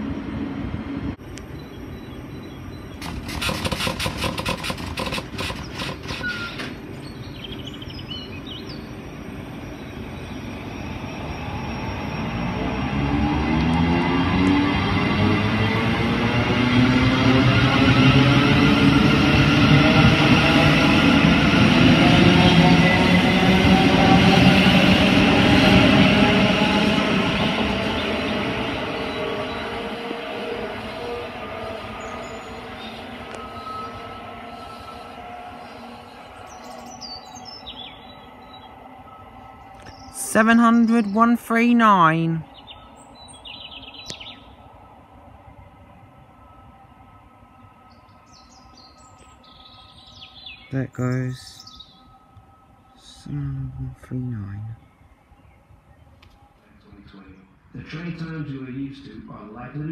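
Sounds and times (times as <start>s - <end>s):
train wheels on rail: 0.0s - 40.2s
train whine rising in pitch: 6.0s - 53.9s.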